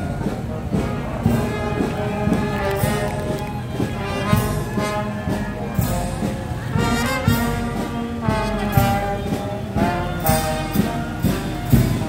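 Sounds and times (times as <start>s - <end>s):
brass band playing: 0.0s - 12.0s
drum beat: 0.0s - 12.0s.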